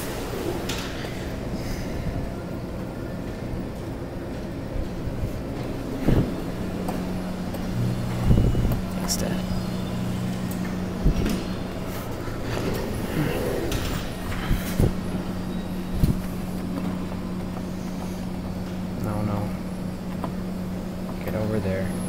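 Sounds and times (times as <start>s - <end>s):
low motor hum: 0.0s - 22.0s.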